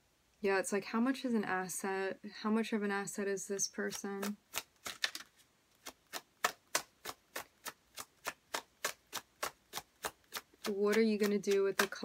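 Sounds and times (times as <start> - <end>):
cards being shuffled: 3.8 - 12.0.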